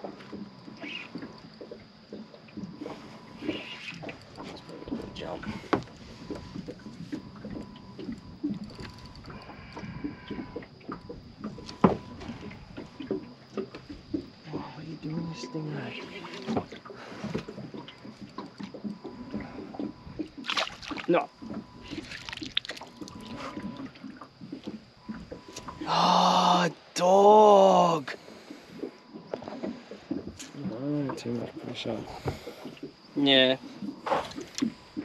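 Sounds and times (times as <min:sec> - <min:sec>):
fish splashing: 0:00.0 - 0:14.9, 0:15.6 - 0:26.9, 0:32.2 - 0:35.0.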